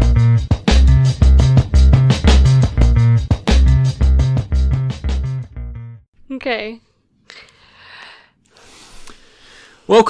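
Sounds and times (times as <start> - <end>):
soft breaths: 7.2 - 9.9.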